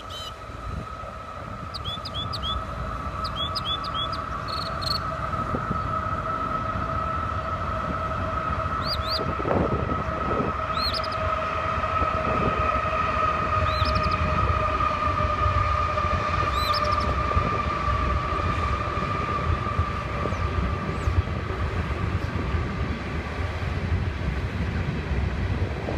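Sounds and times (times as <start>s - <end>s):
small songbird chirping: 0.0s - 0.4s, 1.7s - 5.0s
constant low rumble: 0.0s - 25.9s
steady droning tone: 0.0s - 25.9s.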